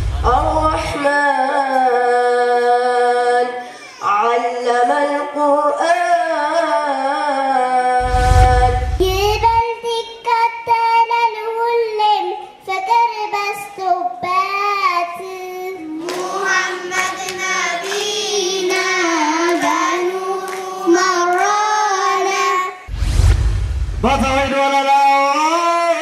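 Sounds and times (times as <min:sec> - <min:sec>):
deep rumble: 0:00.0 - 0:00.9, 0:08.0 - 0:09.6, 0:22.9 - 0:24.5
child singing into microphone: 0:00.0 - 0:08.0, 0:09.0 - 0:22.9.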